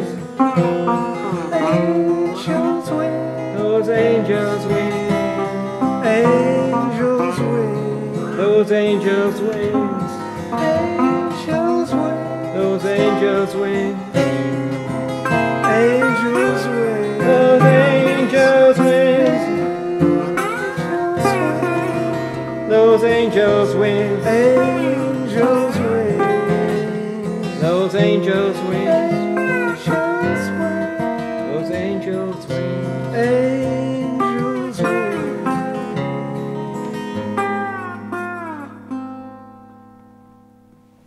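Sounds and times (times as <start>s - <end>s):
picked acoustic guitar: 0.0s - 41.0s
slide resonator guitar: 0.0s - 41.0s.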